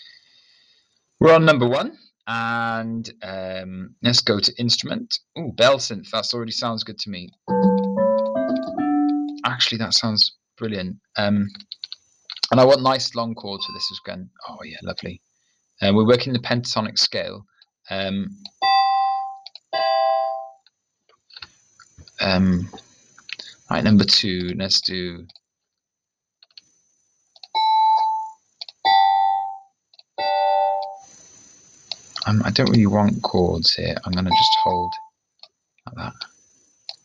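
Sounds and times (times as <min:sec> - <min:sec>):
bell synth chords: 0:07.5 - 0:09.4
computer mouse clicks: 0:28.6 - 0:28.8.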